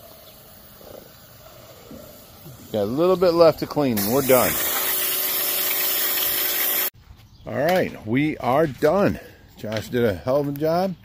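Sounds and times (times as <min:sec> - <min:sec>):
pressure washer spraying water: 0:00.0 - 0:06.9.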